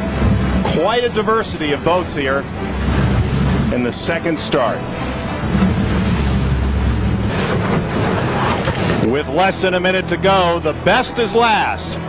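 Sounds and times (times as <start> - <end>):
wind buffeting microphone: 0.0 - 9.3
choppy sea water: 0.0 - 12.0.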